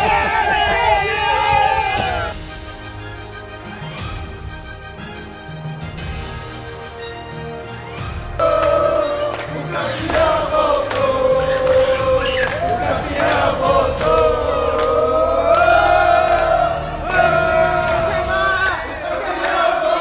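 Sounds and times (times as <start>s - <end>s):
men chanting in unison: 8.4s - 20.0s.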